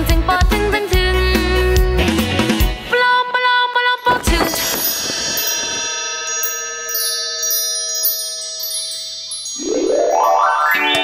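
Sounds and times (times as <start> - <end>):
shimmering bell-like chime: 4.4 - 11.0.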